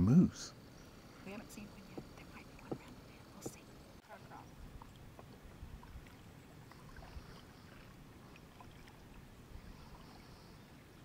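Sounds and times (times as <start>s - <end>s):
kayak paddling on water: 0.5s - 11.0s
water dripping off paddle: 4.7s - 10.2s.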